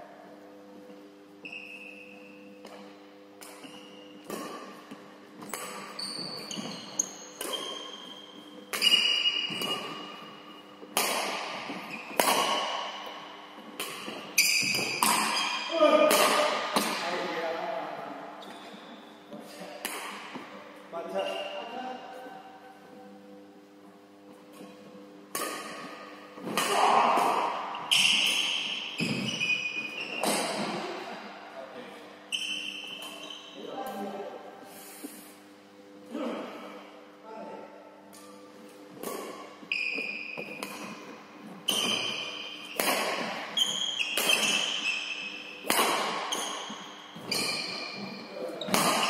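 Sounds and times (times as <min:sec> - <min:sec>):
rackets striking shuttlecock: 0:03.4 - 0:17.2, 0:25.3 - 0:30.9, 0:38.1 - 0:49.0
shoes squeaking on wooden floor: 0:05.4 - 0:10.0, 0:27.8 - 0:30.6, 0:39.6 - 0:40.6, 0:41.7 - 0:42.8, 0:46.3 - 0:49.0.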